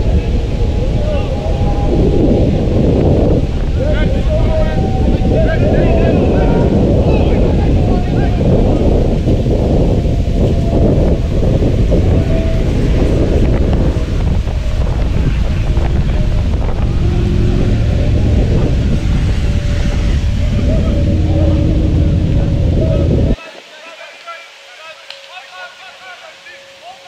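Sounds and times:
wind buffeting microphone: 0.0s - 23.4s.

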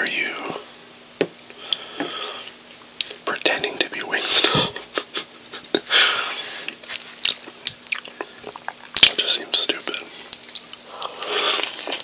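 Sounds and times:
wet chewing mouth clicks: 2.6s - 3.4s, 6.7s - 9.2s, 9.9s - 12.0s.

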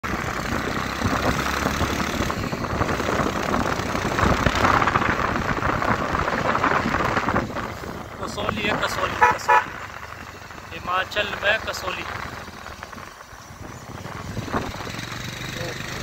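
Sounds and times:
vehicle engine and road noise: 0.0s - 16.0s
rushing air: 0.1s - 10.7s.

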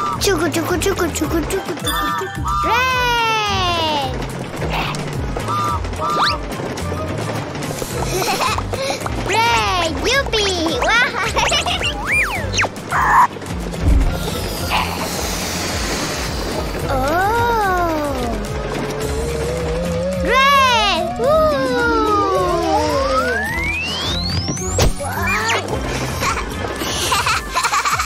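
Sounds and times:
light background music: 0.0s - 28.0s
low thump: 13.8s - 14.2s
cartoon bunny squeak: 25.0s - 25.6s.

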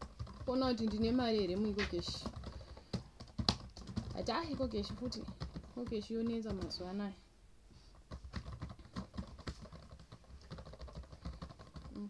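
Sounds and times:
laptop keyboard typing: 0.0s - 7.0s, 8.0s - 12.0s.

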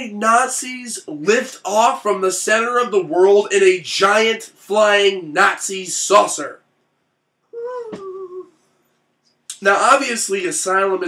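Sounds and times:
person humming a high note: 7.5s - 8.6s.

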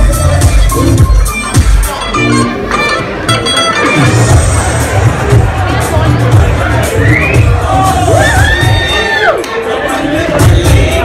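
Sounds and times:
loud dance music: 0.0s - 11.0s
crowd cheering and whooping: 4.6s - 9.7s.

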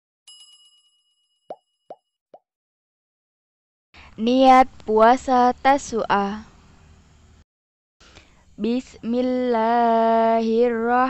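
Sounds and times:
notification bell ding: 0.3s - 2.0s.

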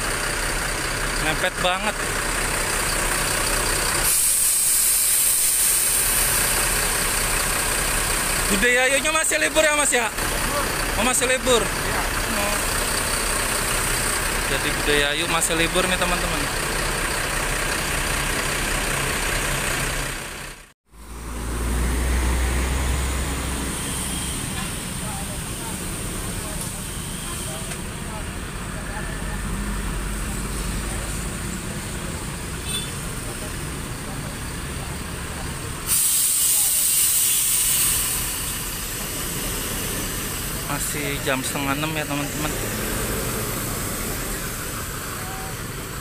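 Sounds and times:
bus diesel engine idling: 0.0s - 46.0s
air brakes hissing: 2.8s - 10.8s, 22.2s - 28.0s, 35.8s - 46.0s.

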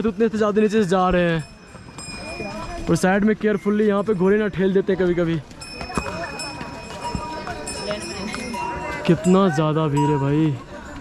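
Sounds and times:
crowd talking: 0.0s - 11.0s
harness bells ringing: 0.0s - 11.0s
horse hooves on stony trail: 0.0s - 11.0s.

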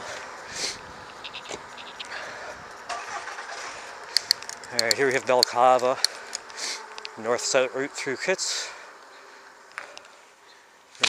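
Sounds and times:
wind and road noise: 0.0s - 11.0s
person sniffing: 0.5s - 0.8s
light clicks: 4.1s - 7.2s.

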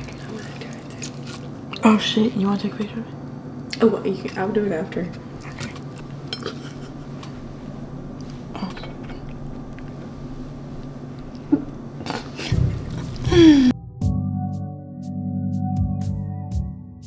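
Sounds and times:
steady room hum: 0.0s - 13.7s.

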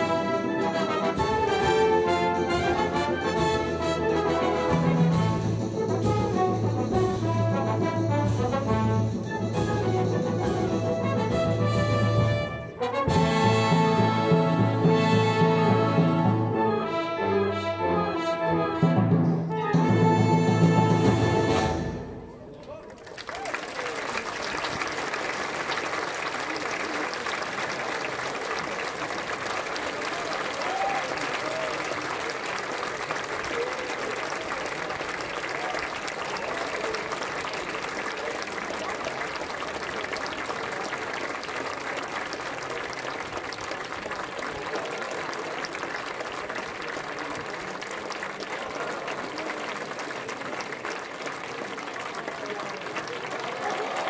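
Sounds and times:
large audience applauding: 22.6s - 54.0s.

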